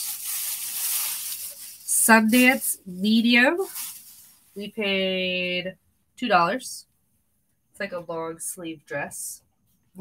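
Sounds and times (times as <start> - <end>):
clothing rustling: 0.0 - 4.7
plastic bag crinkling: 0.0 - 4.8.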